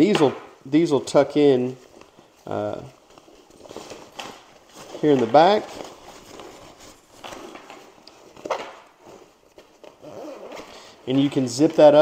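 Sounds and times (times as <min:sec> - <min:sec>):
backpack fabric rustling: 0:01.5 - 0:10.9.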